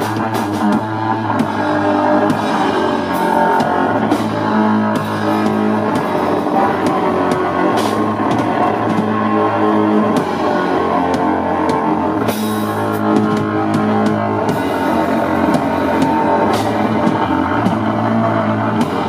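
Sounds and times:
cymbal crash: 0.0 - 19.0
drum kit: 0.0 - 19.0
electric guitar melody: 0.0 - 19.0.

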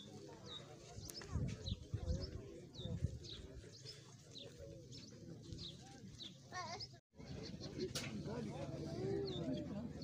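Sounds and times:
small birds chirping: 0.0 - 8.0
murmur of men's voices: 7.3 - 10.0.

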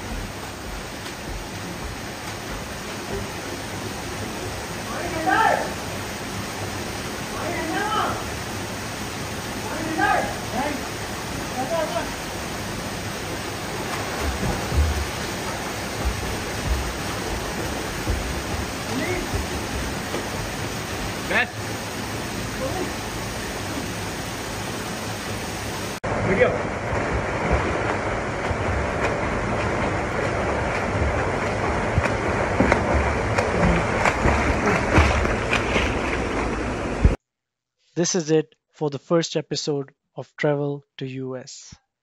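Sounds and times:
waterfall rushing into pool: 0.0 - 37.2
people splashing in water: 13.6 - 21.4, 26.5 - 37.2
people calling: 18.7 - 20.0.

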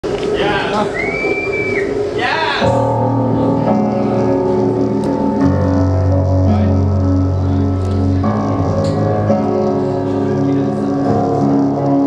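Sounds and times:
crowd voices: 0.0 - 12.0
high whistle: 0.8 - 2.2.

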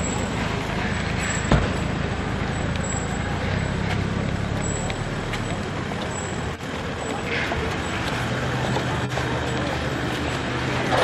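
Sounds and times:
indistinct voices: 0.0 - 11.0
traffic noise: 0.0 - 11.0.

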